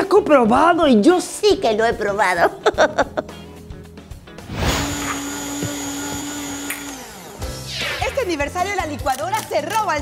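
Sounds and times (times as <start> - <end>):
blender motor whirring: 4.5 - 8.2.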